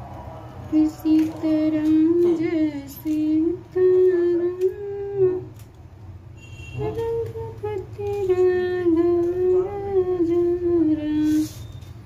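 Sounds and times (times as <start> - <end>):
woman humming: 3.7 - 5.5, 6.8 - 11.5.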